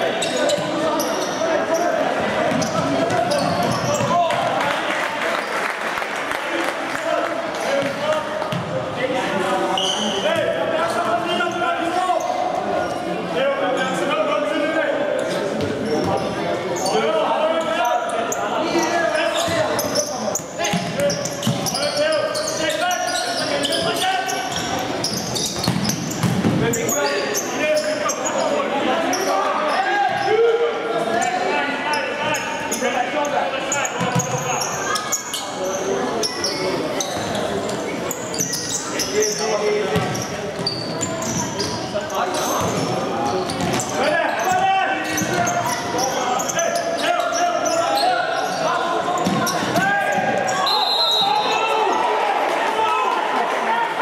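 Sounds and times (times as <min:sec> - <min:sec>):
ball bouncing on wooden court: 0:02.4 - 0:04.2, 0:25.5 - 0:26.6, 0:43.5 - 0:43.9, 0:49.2 - 0:50.3
people shouting in hall: 0:47.8 - 0:54.0.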